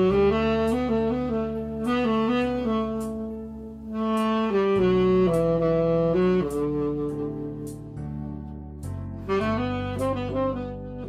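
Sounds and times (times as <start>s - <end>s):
tenor saxophone ballad melody: 0.0s - 11.0s.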